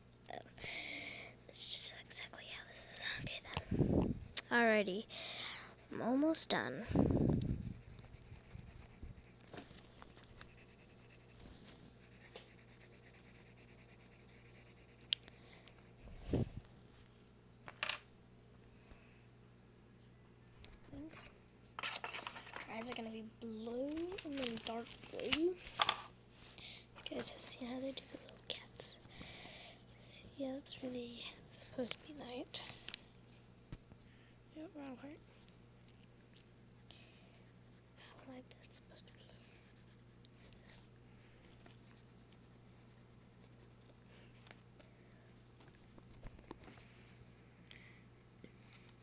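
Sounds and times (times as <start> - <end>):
girl speaking: 0.3 - 0.6, 1.5 - 3.7, 4.4 - 7.0, 20.8 - 21.4, 22.7 - 25.6, 27.0 - 29.0, 30.1 - 32.7, 34.5 - 35.2, 38.0 - 39.4
coloured pencil scratching on paper: 4.2 - 16.0, 36.6 - 40.2, 41.7 - 44.0.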